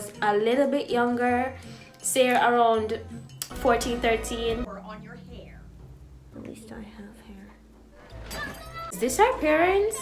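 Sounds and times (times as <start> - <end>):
low steady background tones: 0.0 - 10.0.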